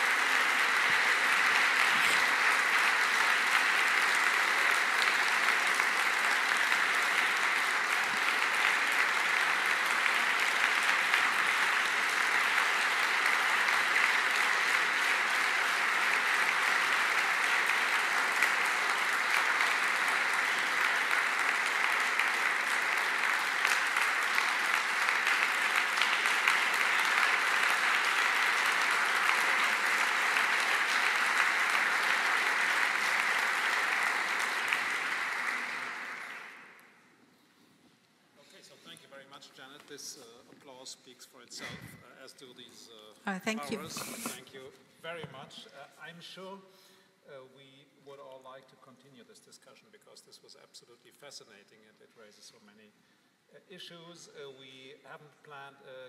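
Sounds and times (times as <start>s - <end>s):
audience applauding: 0.0s - 37.0s, 43.3s - 44.4s.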